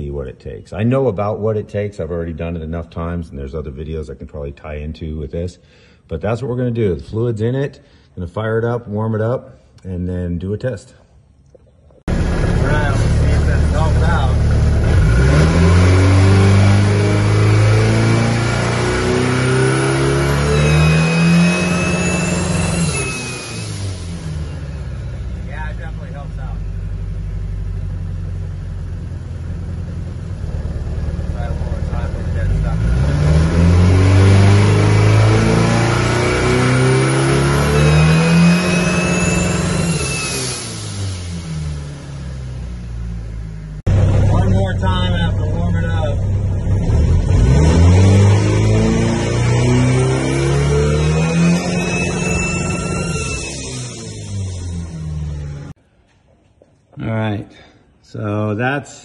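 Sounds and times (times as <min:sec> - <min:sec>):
car engine revving: 0:12.1 - 0:55.8
high rising whistle: 0:19.1 - 0:26.1, 0:33.9 - 0:42.8, 0:48.4 - 0:55.8
squeak: 0:20.4 - 0:24.8, 0:37.2 - 0:41.1, 0:50.6 - 0:55.1.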